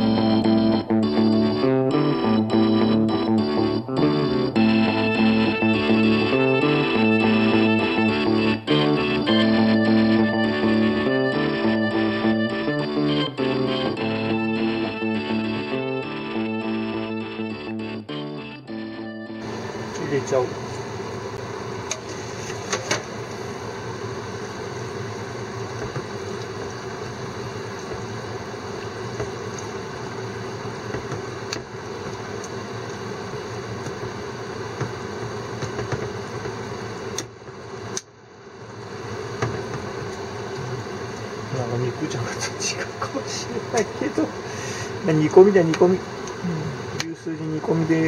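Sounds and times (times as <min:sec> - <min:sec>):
steady hum: 0:00.0 - 0:48.0.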